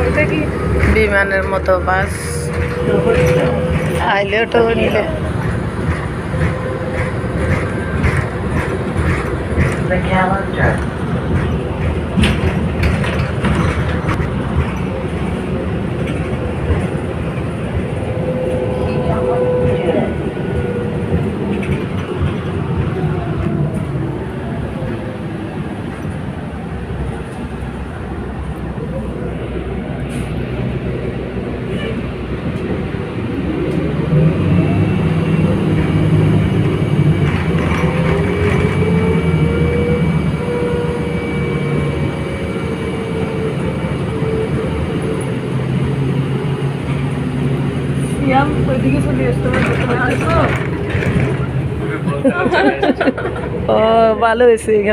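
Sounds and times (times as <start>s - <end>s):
bus engine and road noise: 0.0s - 54.9s.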